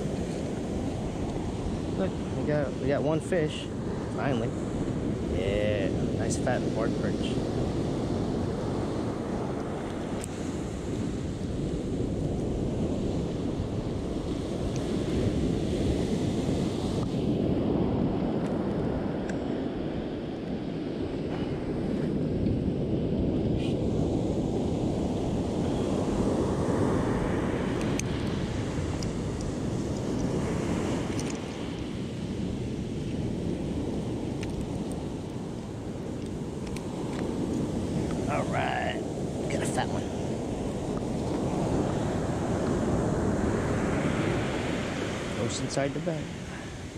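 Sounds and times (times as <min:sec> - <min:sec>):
ocean surf breaking: 0:00.0 - 0:46.9
wind buffeting microphone: 0:00.0 - 0:46.9.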